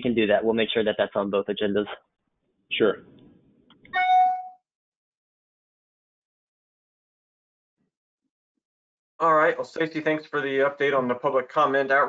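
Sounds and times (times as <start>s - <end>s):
electronic notification chime: 4.0s - 4.6s.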